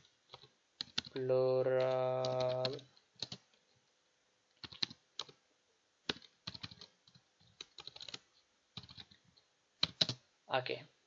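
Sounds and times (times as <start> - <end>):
quiet keyboard keystrokes: 0.0 - 3.7, 4.5 - 5.4, 6.1 - 10.2.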